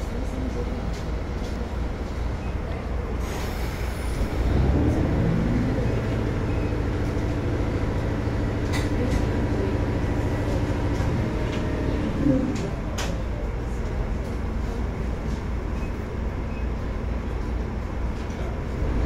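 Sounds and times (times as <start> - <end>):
diesel engine running: 0.0 - 19.0.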